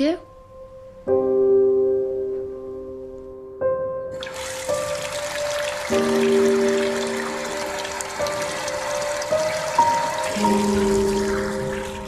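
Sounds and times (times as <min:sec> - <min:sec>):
water splashing into basin: 0:04.2 - 0:12.0.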